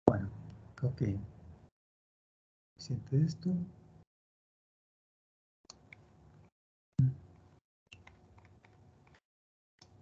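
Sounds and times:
keyboard and mouse clicks: 7.9s - 9.2s.

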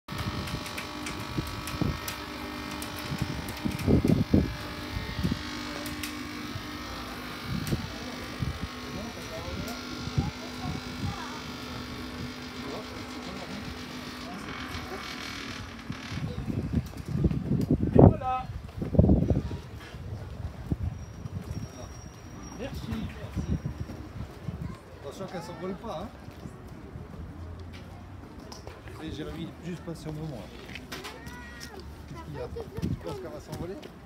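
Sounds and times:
cotton candy machine motor hum: 0.1s - 17.8s.

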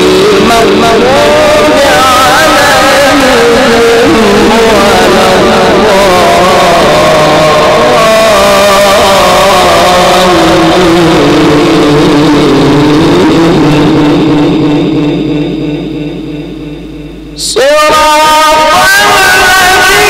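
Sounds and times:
man chanting melodically into microphone: 0.0s - 20.0s.

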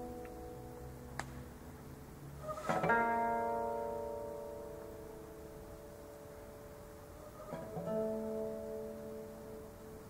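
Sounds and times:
classical guitar chord ringing: 0.0s - 10.0s.

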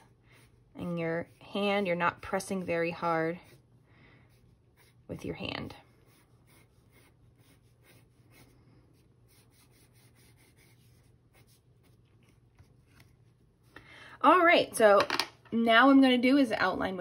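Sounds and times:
pencil scratching on paper: 0.0s - 13.7s.

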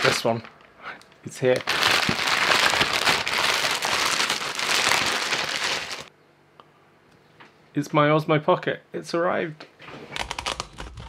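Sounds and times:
plastic bag crinkling and tearing: 0.0s - 0.7s, 1.3s - 6.1s, 10.2s - 11.0s.

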